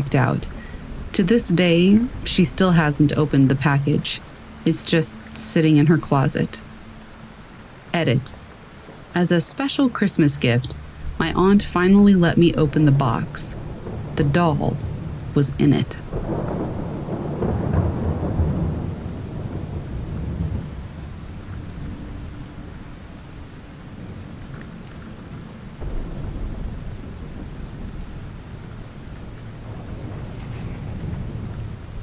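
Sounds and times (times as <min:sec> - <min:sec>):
steady rain: 0:00.0 - 0:32.0
rolling thunder: 0:12.5 - 0:32.0.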